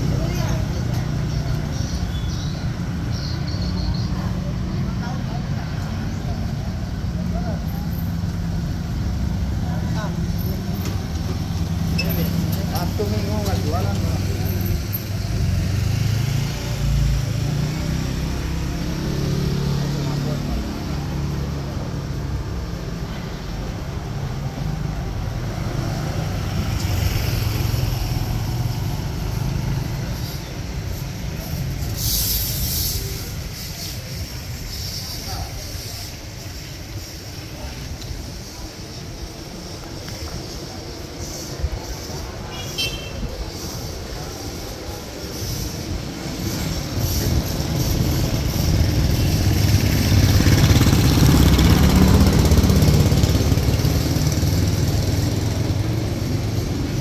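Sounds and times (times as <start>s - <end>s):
people's voices: 0.0s - 57.0s
motorcycle and car engines passing: 4.3s - 42.6s, 43.4s - 57.0s.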